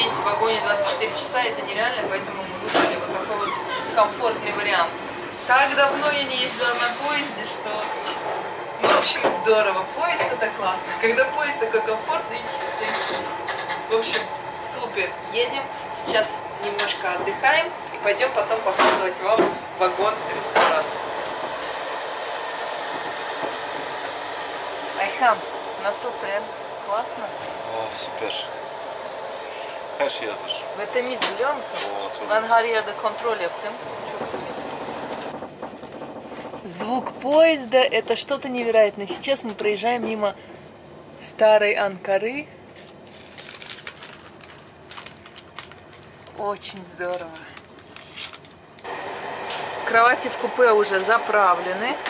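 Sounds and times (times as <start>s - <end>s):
train wheels on rail: 0.0s - 41.8s, 42.7s - 52.0s.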